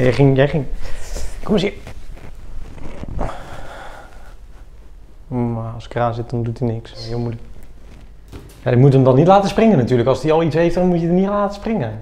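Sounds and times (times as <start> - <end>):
breathy rush of air: 3.1 - 4.6.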